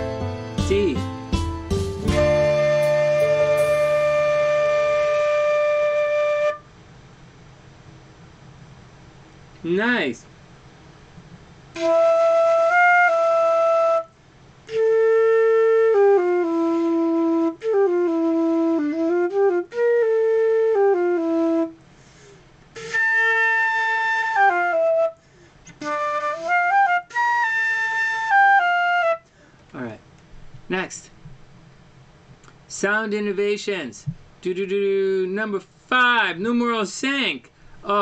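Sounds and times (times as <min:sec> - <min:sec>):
flute playing held notes: 0:00.0 - 0:06.7, 0:11.8 - 0:14.1, 0:14.7 - 0:21.8, 0:22.8 - 0:29.3.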